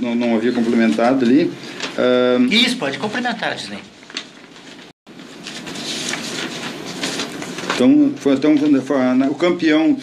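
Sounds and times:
paper rustling: 0.2s - 9.9s.

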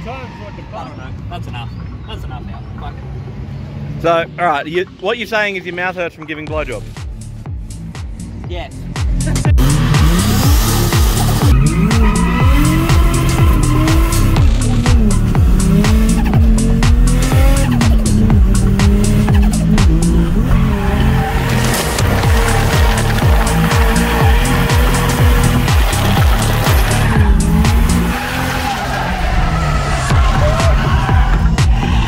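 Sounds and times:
background music with beat: 6.4s - 28.7s, 30.1s - 32.0s
car engine revving high: 9.5s - 32.0s
tyres squealing: 9.6s - 32.0s.

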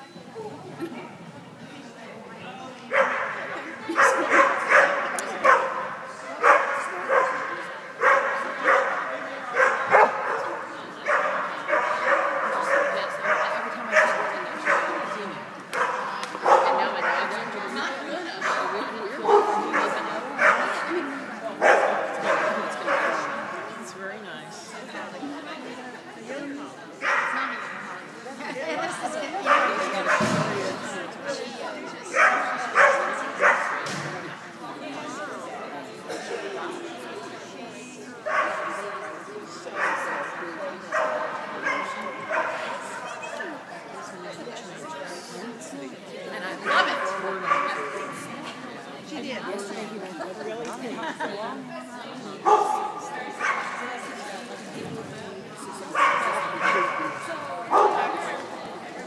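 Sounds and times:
dog barking: 2.9s - 3.4s, 4.0s - 5.8s, 6.4s - 15.0s, 15.7s - 17.3s, 18.4s - 20.8s, 32.1s - 33.8s, 46.7s - 48.1s, 52.4s - 52.8s, 56.0s - 57.1s, 57.7s - 58.1s.

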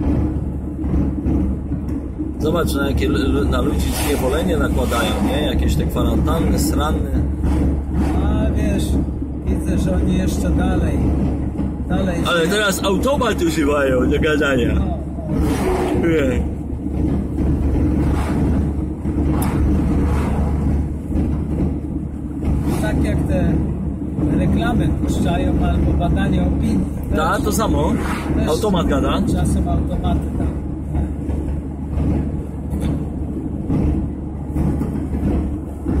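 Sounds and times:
car cabin road and engine noise: 0.0s - 36.0s.

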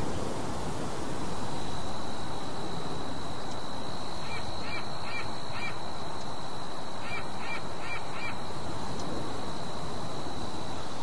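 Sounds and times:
outdoor hiss: 0.0s - 11.0s.

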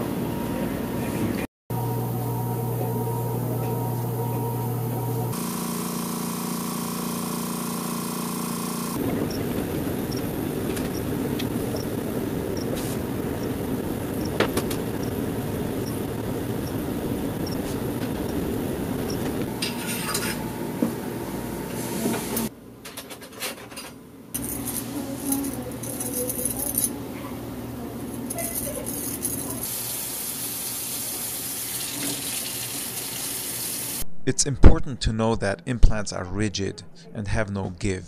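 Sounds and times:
furnace mechanical hum: 0.0s - 34.1s.

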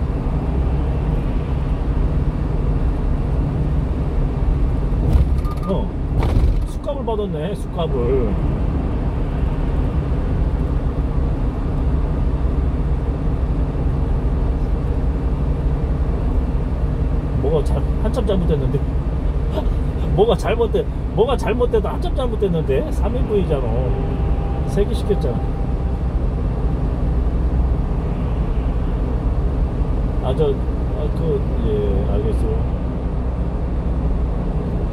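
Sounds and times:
engine and tyre drone: 0.0s - 34.9s.

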